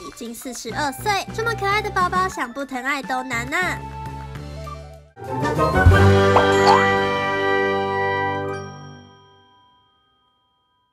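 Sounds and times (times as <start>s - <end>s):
chiming logo jingle: 6.4s - 7.1s.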